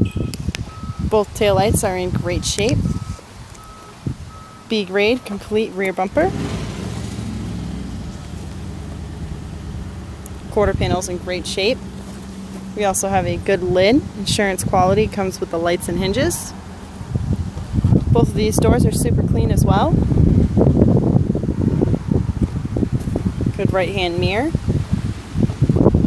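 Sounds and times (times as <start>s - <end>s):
wind buffeting microphone: 0.0s - 26.0s
engine idling: 1.9s - 18.0s.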